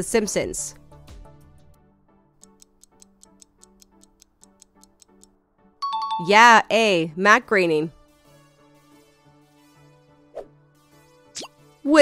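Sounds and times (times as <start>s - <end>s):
soft background music: 0.0s - 12.0s
timer ticking: 2.4s - 5.3s.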